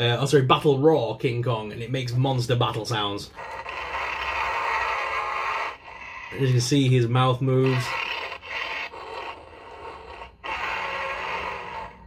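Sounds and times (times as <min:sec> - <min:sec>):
toy monster growls and roars: 0:03.2 - 0:12.0.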